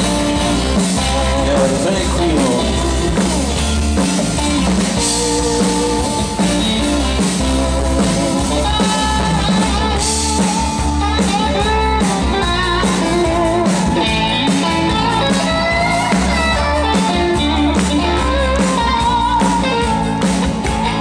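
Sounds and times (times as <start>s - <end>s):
bass guitar: 0.0s - 21.0s
drum kit: 0.0s - 21.0s
electric guitar solo: 0.0s - 21.0s.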